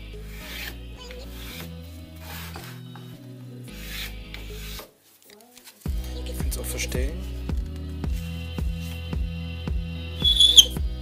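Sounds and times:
marking gauge scraping wood: 0.3s - 2.8s, 3.8s - 4.9s, 10.2s - 10.8s.

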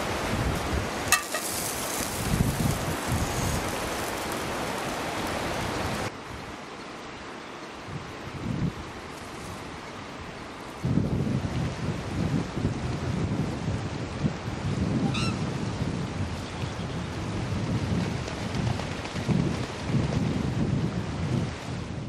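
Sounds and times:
wind buffeting microphone: 0.0s - 6.5s, 7.8s - 22.0s
river rushing: 0.0s - 12.8s
waterbird honk: 15.0s - 15.5s.

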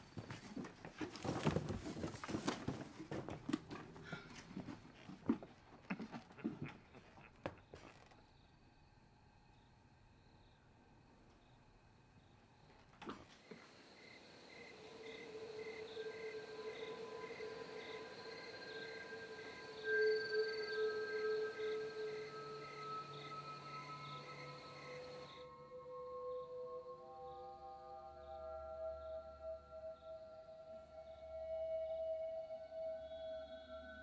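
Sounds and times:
eerie ambient drone tones: 13.5s - 34.0s
faint high pulsing: 13.8s - 28.4s.

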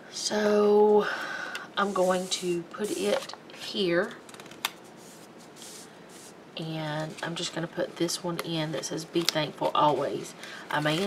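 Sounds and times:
paper rustling and scraping: 1.8s - 6.4s, 9.2s - 11.0s.

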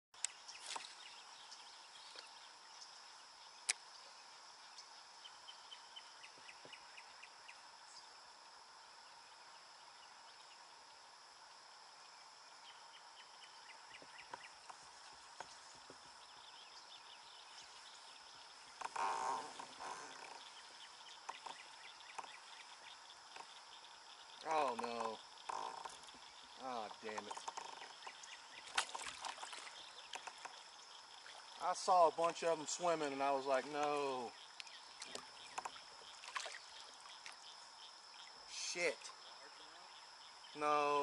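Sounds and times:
water splash: 28.6s - 29.9s, 36.1s - 37.4s.

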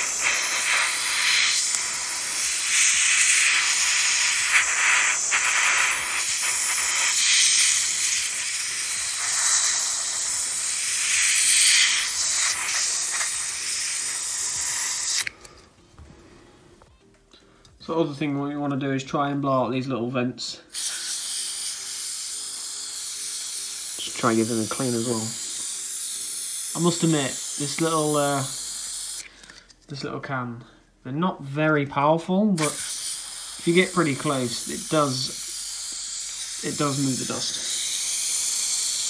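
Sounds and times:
compressed air spraying hiss: 0.0s - 15.3s, 20.7s - 29.3s, 32.6s - 39.0s.

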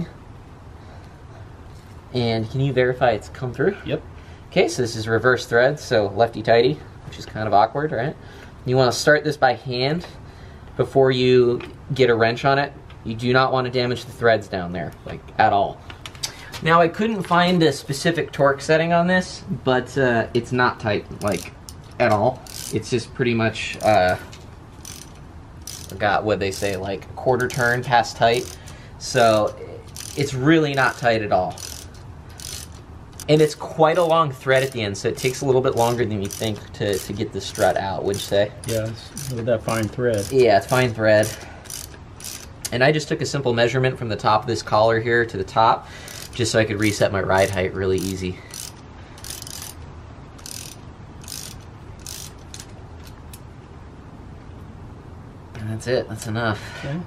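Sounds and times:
socket ratchet clicking: 21.2s - 22.9s, 23.7s - 42.8s, 46.1s - 46.5s, 48.0s - 53.5s.

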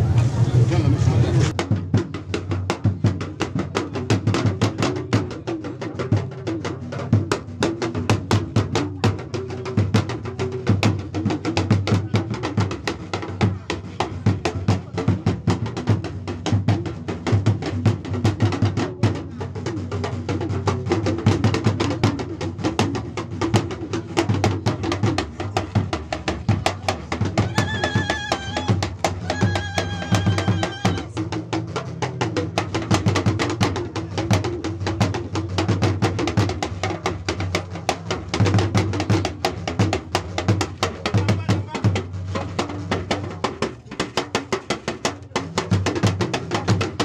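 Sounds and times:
low murmur of voices: 0.0s - 47.0s
fast irregular drumming: 0.8s - 47.0s.

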